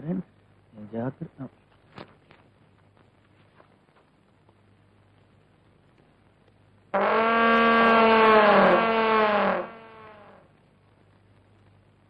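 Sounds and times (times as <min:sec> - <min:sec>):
loud brass-like horn note: 0:07.0 - 0:10.4.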